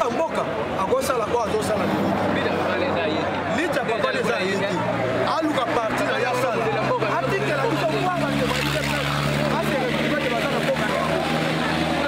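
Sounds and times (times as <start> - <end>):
outdoor voices chatter: 0.0 - 12.0
vehicle engine hum: 0.0 - 12.0.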